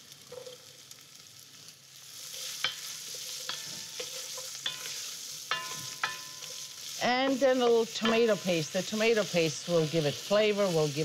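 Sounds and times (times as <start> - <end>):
vegetables sizzling in oil: 0.0 - 11.0.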